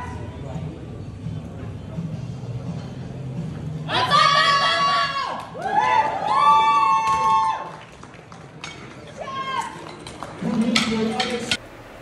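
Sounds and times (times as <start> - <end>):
people yelling: 3.9 - 7.7, 9.2 - 9.8.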